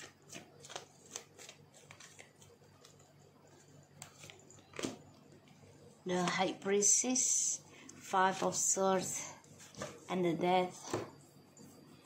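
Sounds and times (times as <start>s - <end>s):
cards being shuffled: 0.0s - 5.0s.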